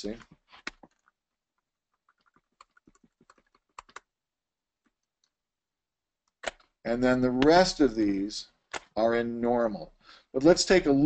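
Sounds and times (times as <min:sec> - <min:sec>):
keyboard and mouse clicking: 0:01.9 - 0:04.1, 0:06.3 - 0:06.7.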